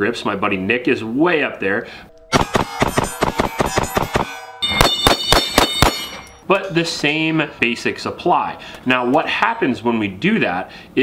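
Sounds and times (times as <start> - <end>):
handgun shots: 2.3 - 6.3
steel targets ringing: 2.3 - 6.4.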